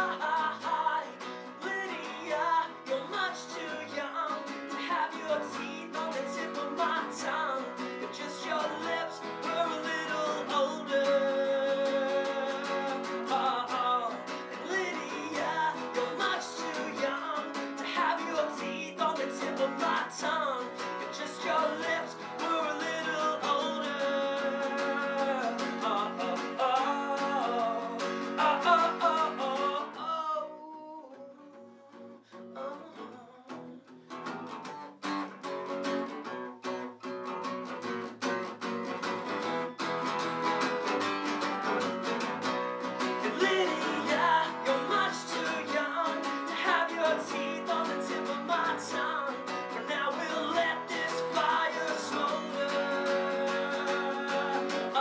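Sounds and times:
man singing: 0:00.0 - 0:34.4, 0:42.8 - 0:55.0
strummed acoustic guitar: 0:00.0 - 0:55.0.

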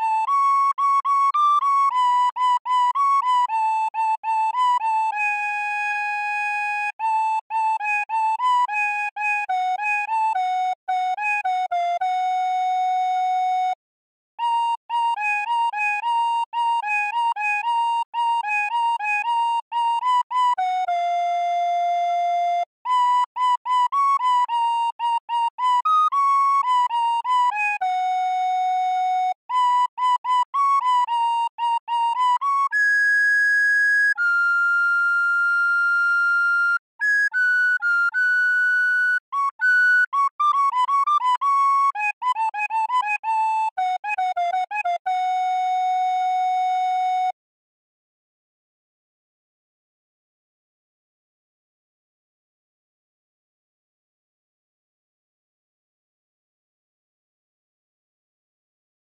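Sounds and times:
recorder playing folk melody: 0:00.0 - 0:13.8, 0:14.4 - 0:47.4.

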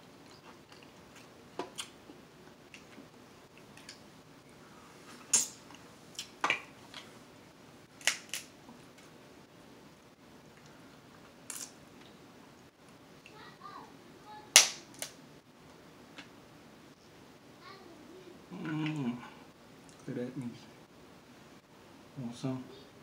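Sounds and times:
quiet chewing: 0:00.2 - 0:04.0
sharp clicks and smacks: 0:14.5 - 0:15.2.

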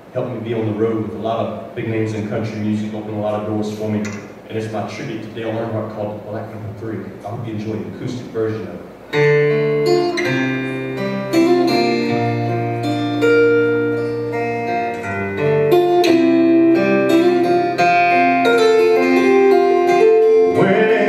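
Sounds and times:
acoustic guitar strumming: 0:09.0 - 0:21.0
man singing: 0:20.5 - 0:21.0.

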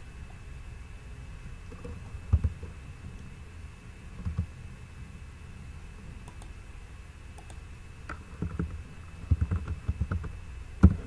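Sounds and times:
computer keyboard typing: 0:04.2 - 0:04.5, 0:06.2 - 0:06.5, 0:07.4 - 0:07.6, 0:08.4 - 0:11.0.

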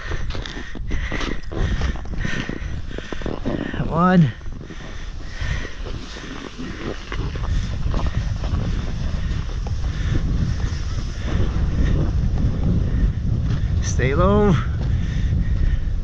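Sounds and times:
wind buffeting microphone: 0:00.0 - 0:16.0
snowboard sliding over snow: 0:01.5 - 0:16.0.

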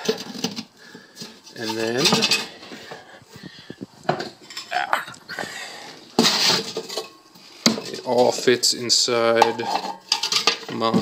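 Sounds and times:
metal cans clinking: 0:00.0 - 0:03.0, 0:06.2 - 0:11.0.

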